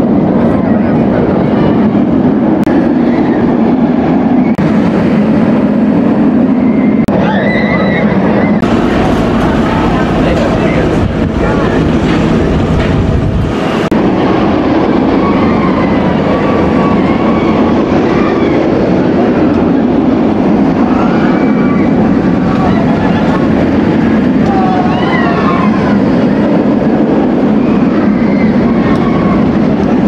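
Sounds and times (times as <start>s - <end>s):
roller coaster roaring on track: 0.0s - 30.0s
people yelling: 7.1s - 12.0s, 14.4s - 19.4s, 20.6s - 26.7s, 27.4s - 30.0s.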